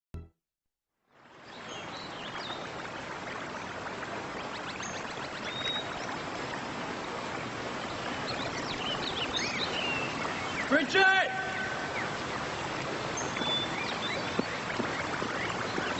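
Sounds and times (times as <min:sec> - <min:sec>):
flowing water rushing: 0:01.1 - 0:15.9
birds chirping: 0:01.6 - 0:15.9.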